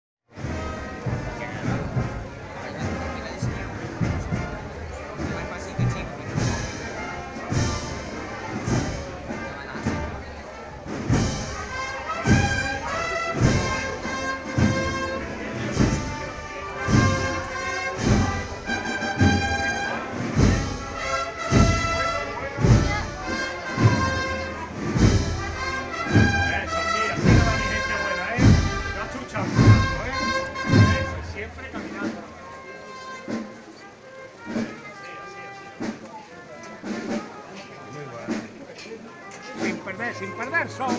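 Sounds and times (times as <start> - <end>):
bass drum beats: 0.3 - 32.3
band playing slow march: 0.3 - 40.9
brass melody: 0.3 - 40.9.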